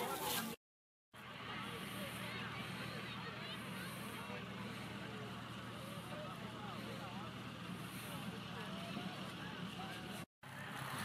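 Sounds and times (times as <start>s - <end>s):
distant people talking: 1.2s - 10.3s.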